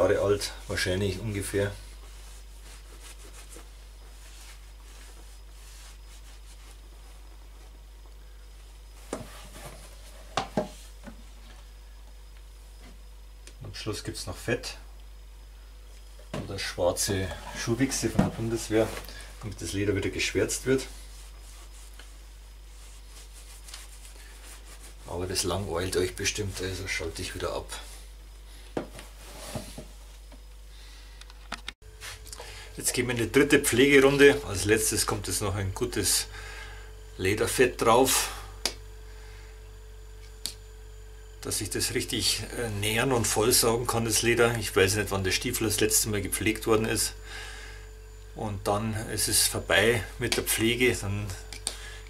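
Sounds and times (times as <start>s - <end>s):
low room hiss: 0.0s - 52.0s
steady low hum: 0.0s - 52.0s
cloth wiping leather: 1.9s - 7.7s, 20.4s - 25.4s.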